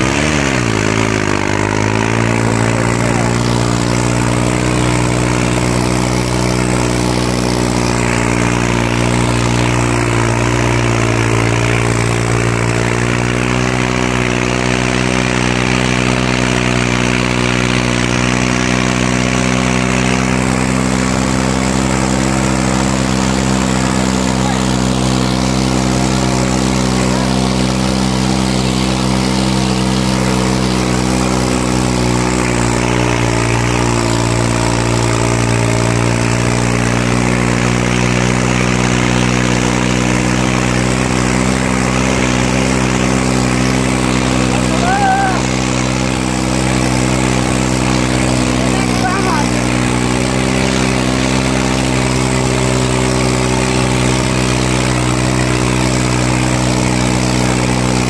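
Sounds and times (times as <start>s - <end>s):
tractor diesel engine under load: 0.0s - 58.0s.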